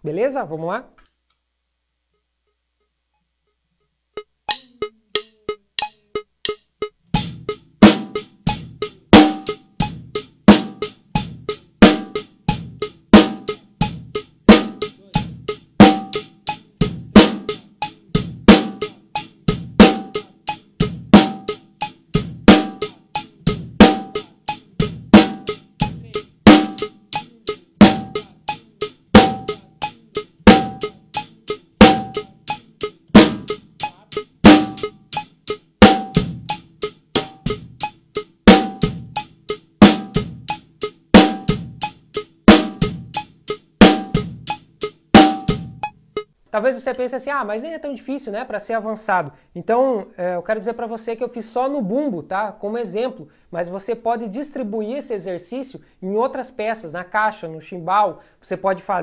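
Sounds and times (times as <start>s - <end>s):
acoustic drum kit groove: 4.1s - 46.4s.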